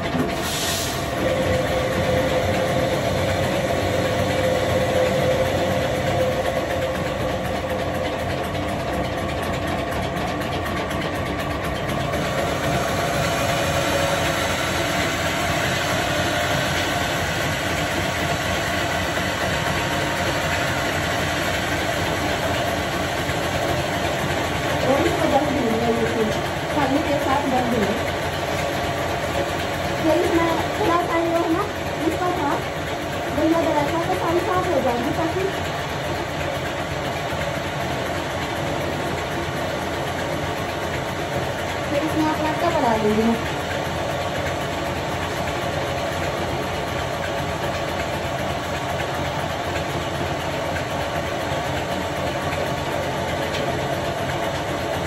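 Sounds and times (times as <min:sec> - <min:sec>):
flour mill grinding: 0:01.1 - 0:44.4.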